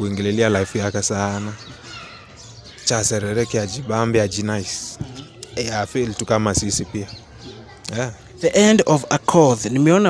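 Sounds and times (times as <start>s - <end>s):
man speaking: 2.9s - 7.1s, 7.9s - 10.0s.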